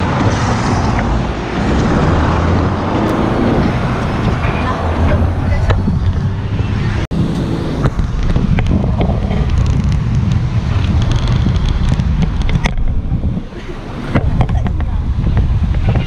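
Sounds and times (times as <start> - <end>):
car road noise: 0.0 - 16.0
wind buffeting microphone: 0.0 - 16.0.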